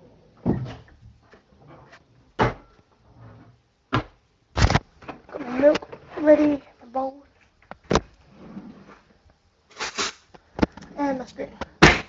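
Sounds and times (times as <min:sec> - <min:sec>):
cupboard doors opening and shutting: 0:00.4 - 0:06.6.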